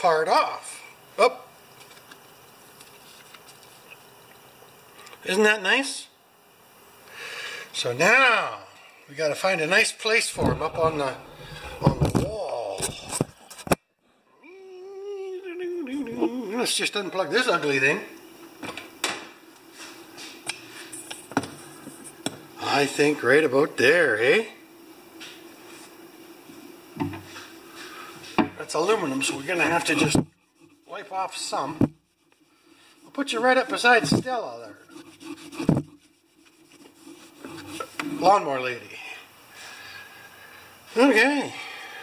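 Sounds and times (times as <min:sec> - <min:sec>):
faint steady hum: 0:00.0 - 0:42.0
cloth rubbing on aluminium: 0:10.4 - 0:12.2, 0:27.2 - 0:38.6.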